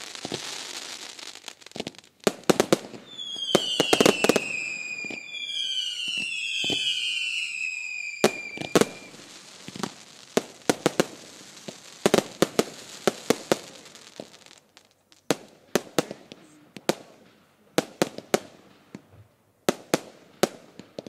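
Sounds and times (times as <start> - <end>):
firework bangs and cracks: 0.0 - 21.0
firework whistles sliding down: 3.0 - 10.2.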